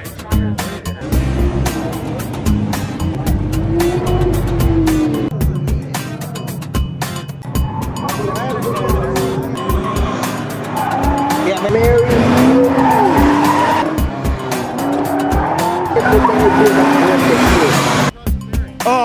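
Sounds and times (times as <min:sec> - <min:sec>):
background music with steady beat: 0:00.0 - 0:19.0
car tyres squealing: 0:07.4 - 0:18.1.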